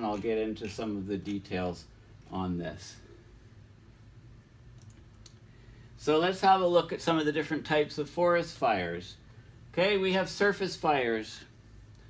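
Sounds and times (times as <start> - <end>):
low room hum: 0.0 - 12.0
computer mouse clicks: 4.8 - 5.4.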